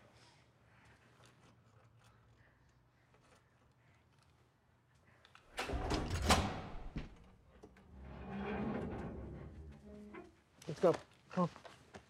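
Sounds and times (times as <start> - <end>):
heavy vault door scraping: 5.5 - 10.3.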